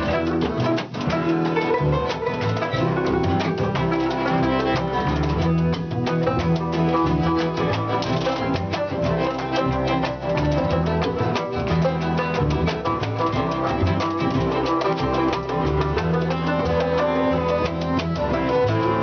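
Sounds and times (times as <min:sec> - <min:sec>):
banjo picking: 0:00.0 - 0:19.0
fiddle: 0:00.0 - 0:19.0
upright bass: 0:00.0 - 0:19.0
washboard rhythm: 0:00.0 - 0:19.0.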